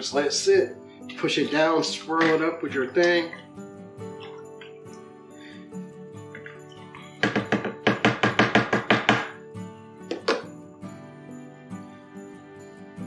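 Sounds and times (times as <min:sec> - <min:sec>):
background music: 0:00.0 - 0:13.0
metal spoon knocking plastic bucket: 0:02.2 - 0:03.4, 0:07.2 - 0:09.4.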